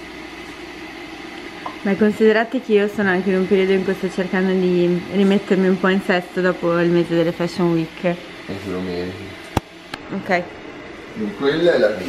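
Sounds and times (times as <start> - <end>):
gas stove hissing: 0.0 - 12.0.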